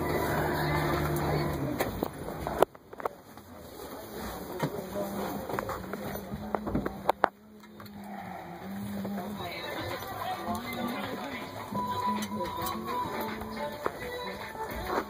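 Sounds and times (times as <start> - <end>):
bus engine humming: 0.0 - 15.0.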